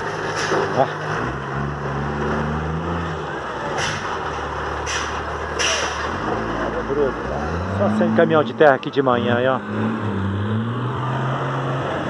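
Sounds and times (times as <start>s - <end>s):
diesel truck engine drone: 0.0s - 12.0s.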